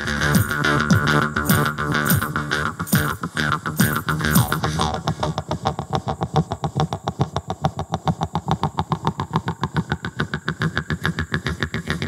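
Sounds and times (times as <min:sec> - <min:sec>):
jaw harp twanging: 0:00.0 - 0:05.0.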